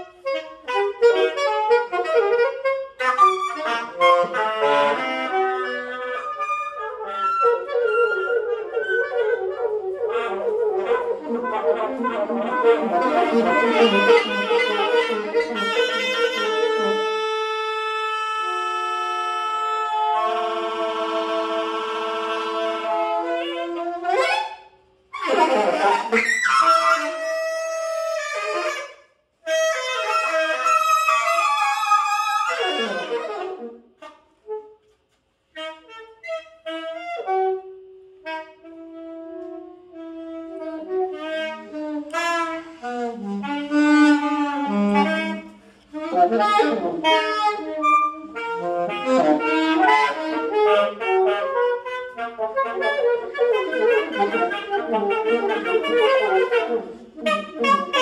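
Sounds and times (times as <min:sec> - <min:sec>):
alto saxophone duo: 0:00.0 - 0:58.0.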